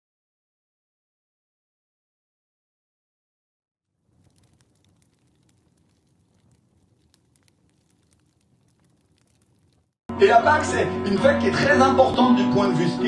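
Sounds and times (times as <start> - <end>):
faint low hiss: 4.0 - 10.0.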